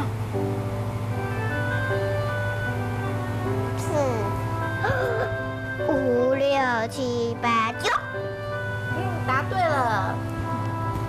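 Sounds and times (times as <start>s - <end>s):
soft background music: 0.0s - 11.0s
girl counting aloud: 6.4s - 8.2s.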